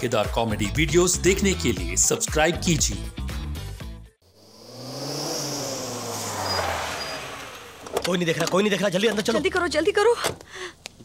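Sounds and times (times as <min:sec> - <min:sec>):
car engine easing off: 0:04.2 - 0:08.9.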